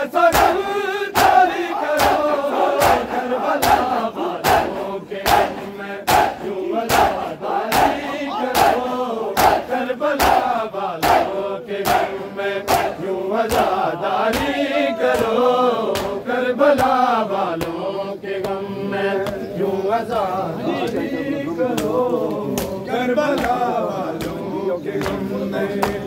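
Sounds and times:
men chanting: 0:00.0 - 0:26.0
men slapping bare chests: 0:00.2 - 0:18.6, 0:19.2 - 0:19.4, 0:20.1 - 0:26.0.

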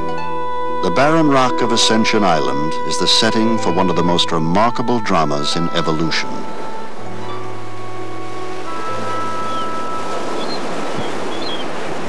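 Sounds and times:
background music held notes: 0:00.0 - 0:12.0
ocean surf breaking: 0:05.1 - 0:12.0.

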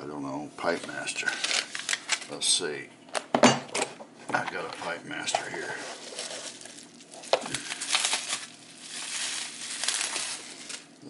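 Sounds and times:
objects rustling and crinkling: 0:00.6 - 0:02.4, 0:04.3 - 0:11.0.

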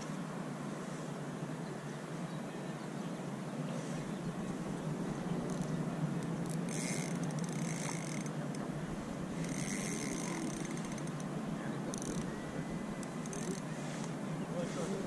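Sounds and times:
fishing reel ratcheting: 0:05.4 - 0:08.4, 0:09.3 - 0:11.3, 0:11.9 - 0:12.4, 0:13.0 - 0:14.1.

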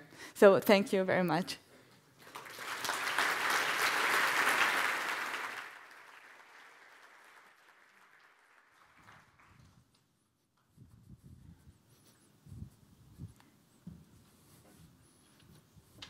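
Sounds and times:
audience applauding: 0:02.2 - 0:09.7.

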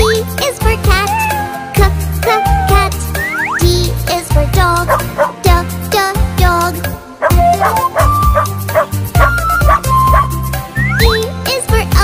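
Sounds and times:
upbeat children's song: 0:00.0 - 0:12.0
cartoon dog barking: 0:01.0 - 0:02.9, 0:04.8 - 0:05.4, 0:07.2 - 0:10.3.

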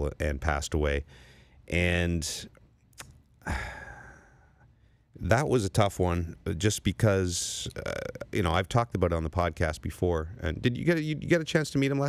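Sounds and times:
man sighing: 0:03.4 - 0:04.7.

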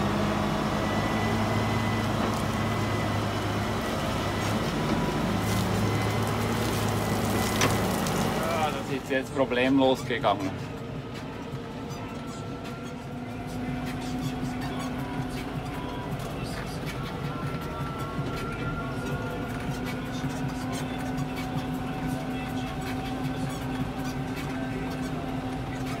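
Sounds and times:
tractor engine running: 0:00.0 - 0:26.0.

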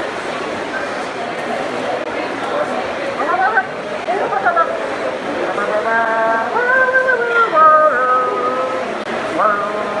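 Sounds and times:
high voices holding wordless notes: 0:05.4 - 0:10.0.

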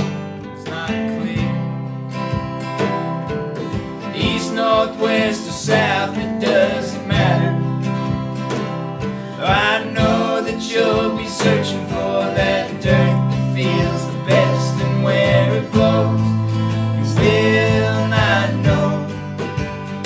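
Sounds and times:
cajon: 0:00.0 - 0:20.0
electric bass: 0:00.0 - 0:20.0
strummed acoustic guitars: 0:00.0 - 0:20.0.

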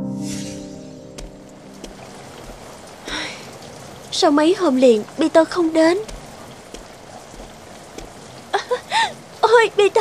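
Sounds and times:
steady rain falling: 0:00.7 - 0:10.0.

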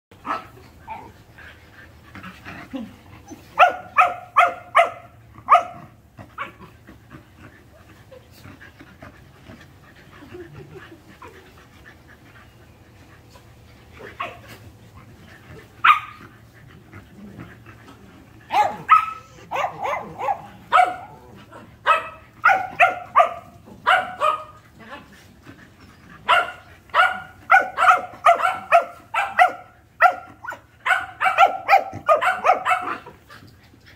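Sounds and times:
dog barking: 0:03.6 - 0:05.8, 0:15.8 - 0:16.2, 0:18.5 - 0:21.1, 0:21.9 - 0:24.6, 0:26.3 - 0:33.0.

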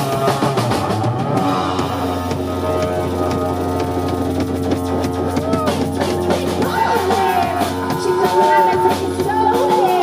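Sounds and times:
drum and cymbal hits: 0:00.0 - 0:10.0.

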